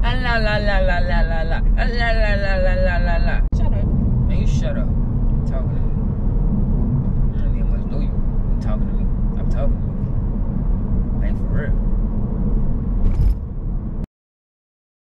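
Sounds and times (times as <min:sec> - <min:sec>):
car road and engine rumble: 0:00.0 - 0:14.1.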